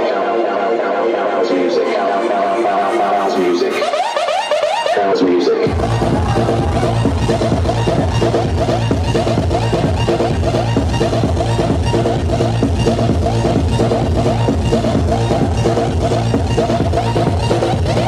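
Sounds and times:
electro house music: 0.0s - 18.0s
kick drum beat: 5.7s - 18.0s.

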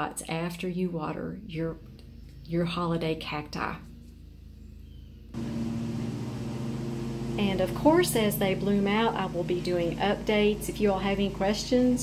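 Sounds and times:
low machine hum: 4.4s - 12.0s.

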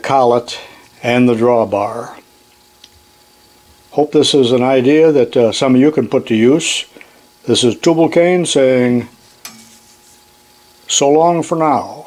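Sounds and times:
room hiss: 0.0s - 12.0s
man speaking: 7.5s - 9.2s.

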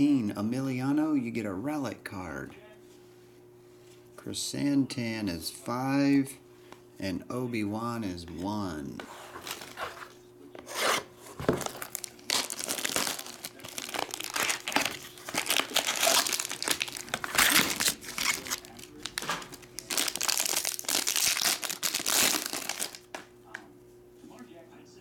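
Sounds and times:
foil wrapper crinkling and tearing: 11.5s - 23.2s.

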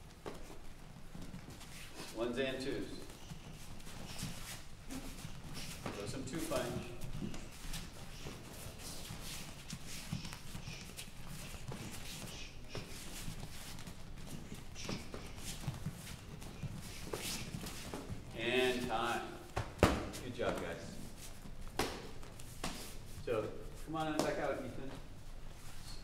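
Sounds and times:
bare feet on gym mats: 0.0s - 26.0s
boxing gloves slapping: 21.6s - 22.9s.

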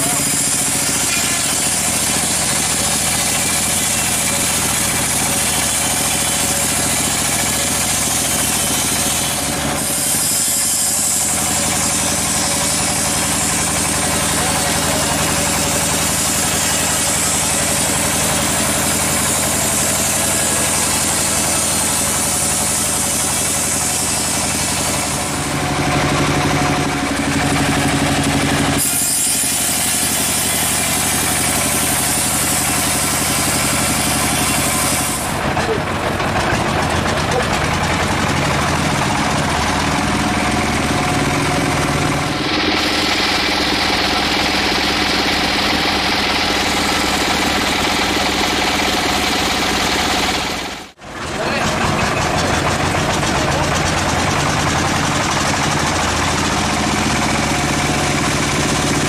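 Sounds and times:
band blade sawing log: 0.0s - 59.0s
sawmill engine running: 0.0s - 59.0s.

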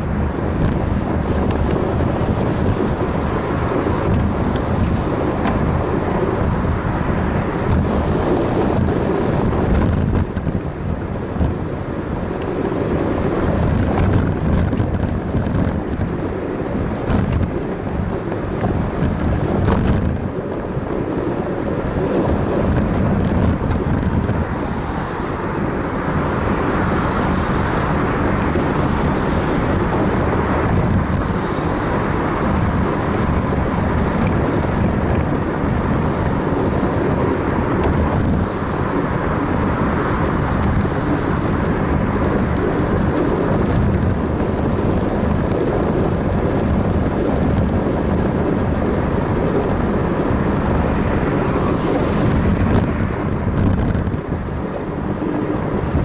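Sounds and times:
road noise: 0.0s - 56.0s
wind buffeting microphone: 0.0s - 56.0s.

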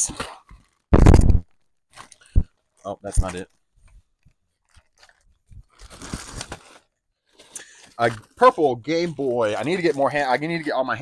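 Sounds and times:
packaging rustling and crinkling: 0.1s - 11.0s.

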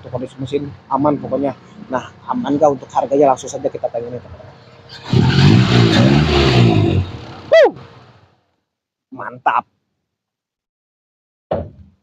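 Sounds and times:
car engine revving: 4.8s - 8.2s.

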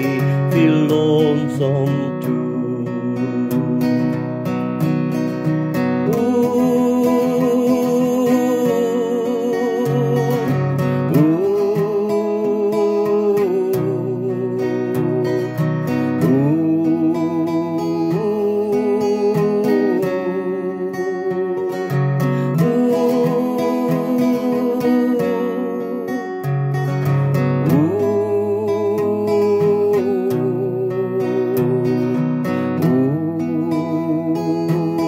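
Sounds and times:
man singing a slow ballad: 0.0s - 4.6s, 5.8s - 35.0s
strummed acoustic guitar: 0.0s - 35.0s.

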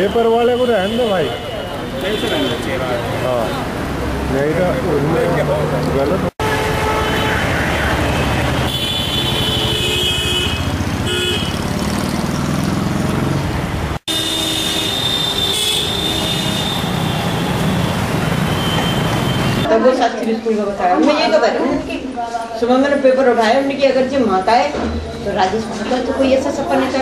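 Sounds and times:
vehicle horns tooting: 0.0s - 3.7s, 6.4s - 11.7s, 14.1s - 19.7s
road traffic noise: 0.0s - 21.4s.

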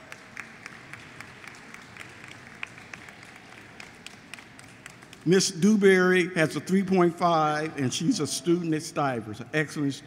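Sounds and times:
audience applauding lightly: 0.0s - 5.4s.

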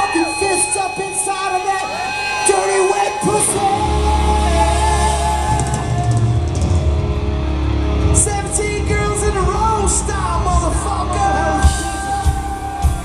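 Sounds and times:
metal band playing: 0.0s - 13.0s
person singing: 2.5s - 6.5s, 8.2s - 13.0s.

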